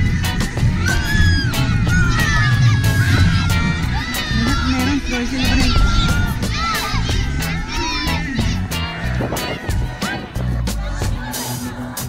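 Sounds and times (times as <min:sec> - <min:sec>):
background music: 0:00.0 - 0:12.0
children shouting and cheering: 0:00.0 - 0:12.0.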